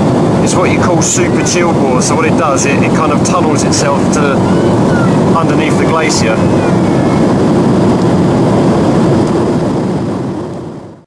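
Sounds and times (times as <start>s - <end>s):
airliner cabin noise: 0.0s - 11.0s.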